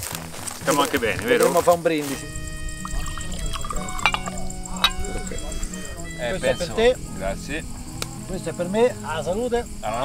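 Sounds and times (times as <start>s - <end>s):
background music held notes: 0.0s - 10.0s
wine pouring into glass: 2.7s - 5.0s
liquid glugs: 2.8s - 5.1s.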